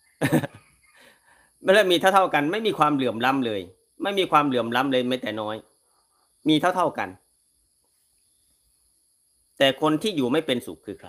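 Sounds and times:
insects chirring: 0.0 - 11.0
man speaking: 1.6 - 5.7, 6.4 - 7.2, 9.6 - 11.0.

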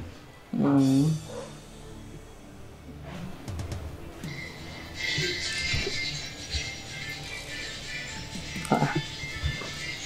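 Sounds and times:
film music with soft beats: 0.0 - 10.0.

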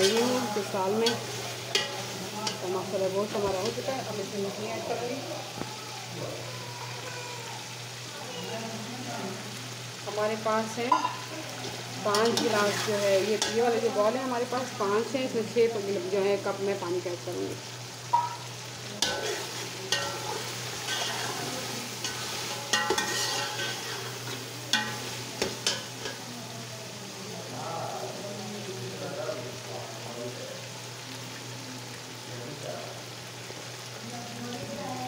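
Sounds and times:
food sizzling in a pot: 0.0 - 35.0
metal spatula scraping a pot: 10.9 - 13.8, 19.0 - 26.2.

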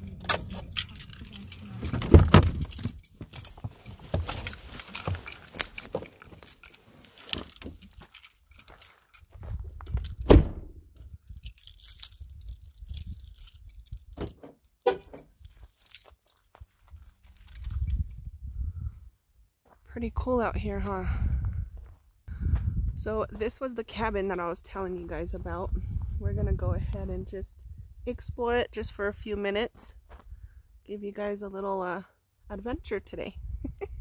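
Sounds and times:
handling clicks and knocks: 0.0 - 10.4, 11.3 - 18.2
car keys jangling: 0.0 - 10.6, 11.2 - 18.4
car door shutting: 10.2 - 10.7.

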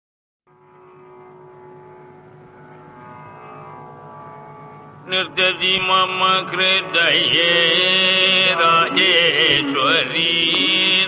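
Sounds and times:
tanpura drone: 0.5 - 11.0.

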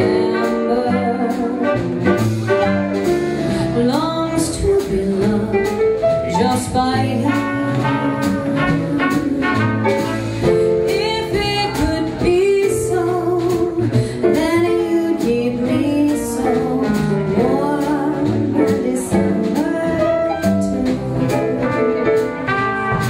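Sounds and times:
woman singing: 0.0 - 1.9, 3.6 - 22.3
jazz combo playing ballad: 0.0 - 23.0.

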